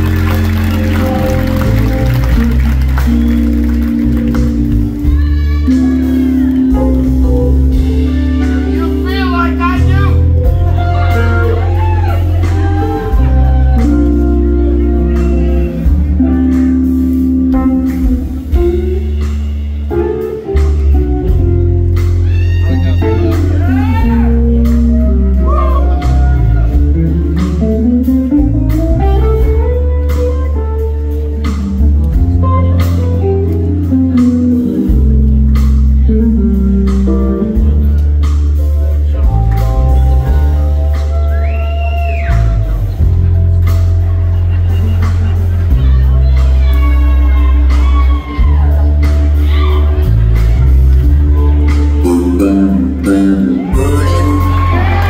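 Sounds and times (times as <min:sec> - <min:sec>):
deep bass line: 0:00.0 - 0:55.0
electric guitar lead: 0:00.0 - 0:55.0
live rock band playing chords: 0:00.0 - 0:55.0.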